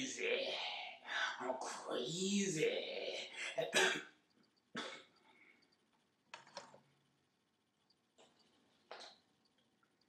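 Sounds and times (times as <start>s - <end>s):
man coughing: 3.5s - 4.1s.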